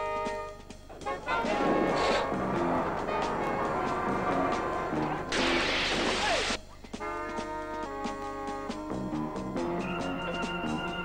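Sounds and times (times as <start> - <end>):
metal garbage can crashing: 0.9 - 6.4.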